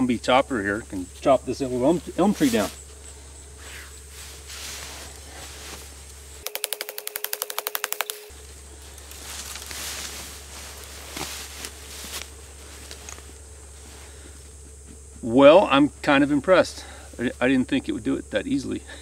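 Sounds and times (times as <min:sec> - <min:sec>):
grass rustling: 0:00.0 - 0:18.8.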